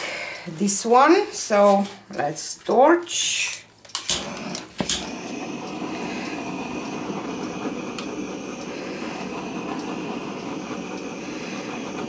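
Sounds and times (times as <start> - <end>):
butane torch hissing: 3.9 - 12.0.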